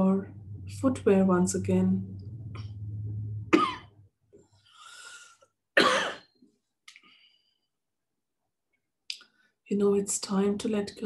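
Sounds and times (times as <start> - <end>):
woman coughing: 3.5 - 3.9, 5.8 - 6.3.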